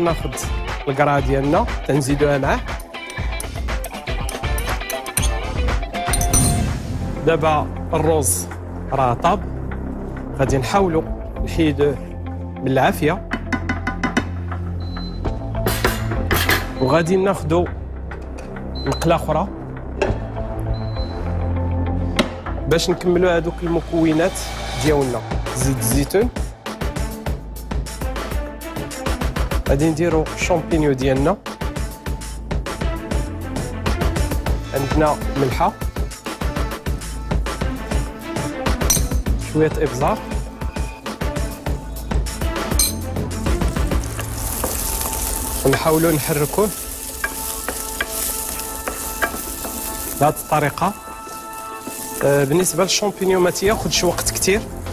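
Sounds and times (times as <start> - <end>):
background music: 0.0 - 54.9
frying pan and spatula scraping: 44.0 - 54.2.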